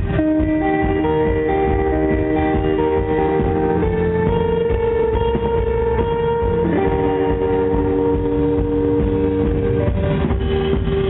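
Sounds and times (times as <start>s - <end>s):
rock band playing loudly: 0.0s - 11.0s.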